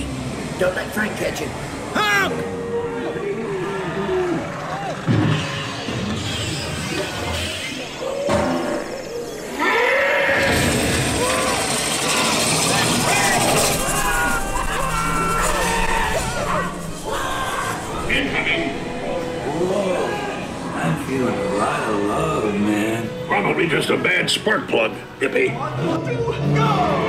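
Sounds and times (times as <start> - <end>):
loud noisy rumble: 10.3 - 23.9.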